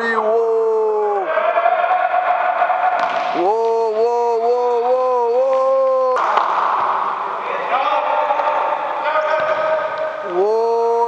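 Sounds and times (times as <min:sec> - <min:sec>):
man shouting excited ooh: 0:00.0 - 0:01.6, 0:03.4 - 0:06.2, 0:10.3 - 0:11.0
noisy shouting: 0:00.0 - 0:11.0.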